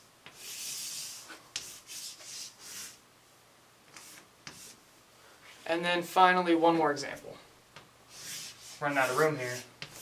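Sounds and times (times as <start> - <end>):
chalk taps: 0.2 - 2.9, 3.9 - 4.8, 7.8 - 10.0
chalk scratching on chalkboard: 0.3 - 3.0, 3.9 - 4.8, 8.1 - 10.0.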